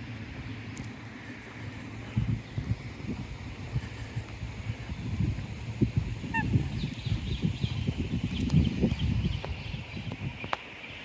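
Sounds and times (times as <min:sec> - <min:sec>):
wind rumbling on microphone: 0:00.0 - 0:11.0
waterbird call: 0:06.3 - 0:06.7.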